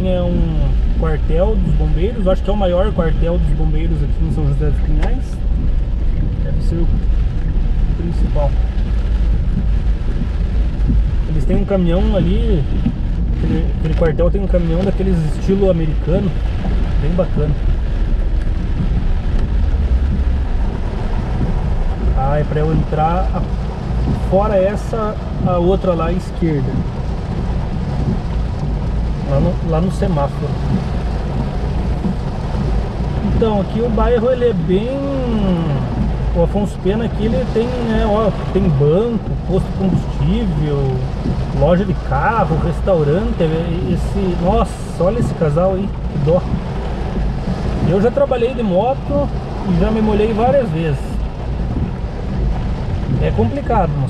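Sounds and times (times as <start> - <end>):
low even rumble: 0.0 - 54.0
rain on car windshield and roof: 0.0 - 54.0.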